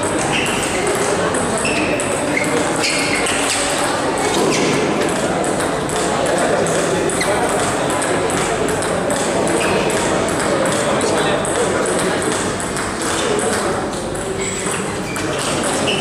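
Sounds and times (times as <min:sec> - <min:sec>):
background chatter of voices: 0:00.0 - 0:16.0
table tennis balls clicking: 0:00.0 - 0:16.0.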